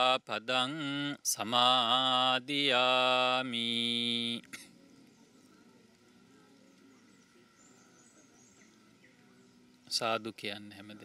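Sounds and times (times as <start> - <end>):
faint high bird chirps: 3.8 - 11.0.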